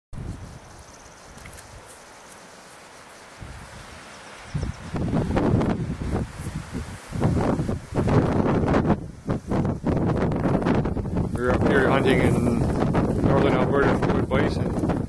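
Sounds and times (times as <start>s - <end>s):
outdoor background noise: 0.2s - 15.0s
wind buffeting microphone: 3.4s - 15.0s.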